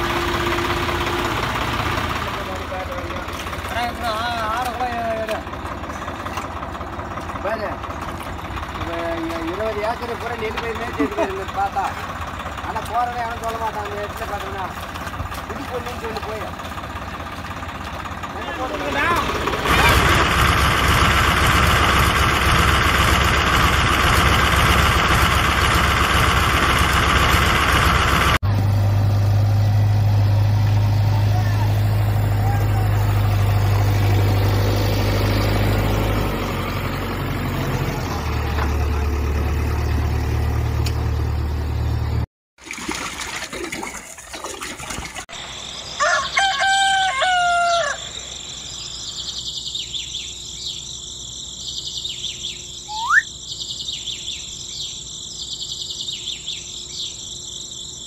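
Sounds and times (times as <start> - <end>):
low engine-like hum: 0.0 - 42.3
rooster crowing: 45.9 - 48.6.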